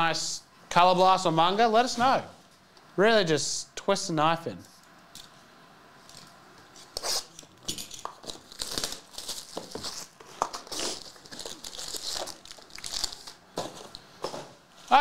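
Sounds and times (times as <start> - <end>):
foil packs rustling: 8.2 - 13.9
plastic wrap crinkling and tearing: 8.2 - 13.9.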